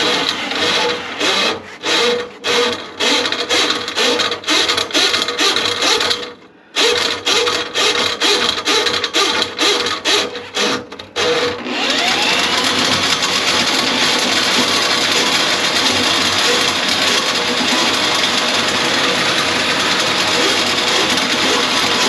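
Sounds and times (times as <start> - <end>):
drain auger motor running: 0.0 - 22.0.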